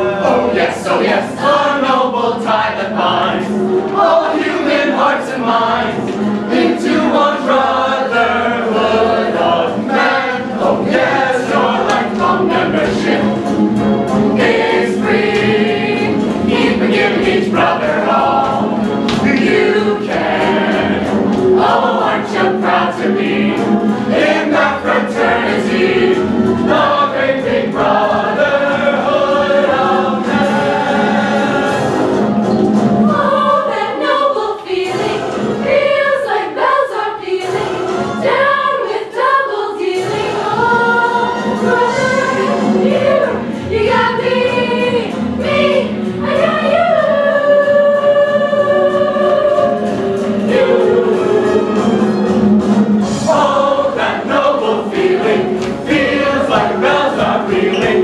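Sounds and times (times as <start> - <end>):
musical accompaniment: 0.0 - 58.0
young voices singing in chorus: 0.0 - 58.0.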